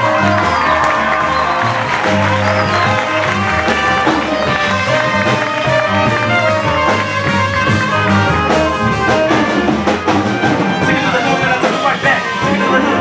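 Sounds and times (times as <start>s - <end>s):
jazz combo playing: 0.0s - 13.0s.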